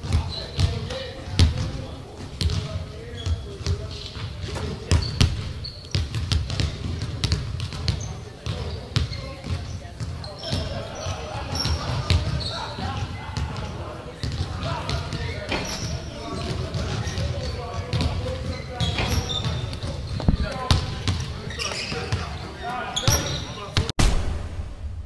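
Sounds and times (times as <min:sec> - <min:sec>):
basketballs bouncing on gym floor: 0:00.0 - 0:23.9
indistinct voices talking: 0:00.0 - 0:23.9.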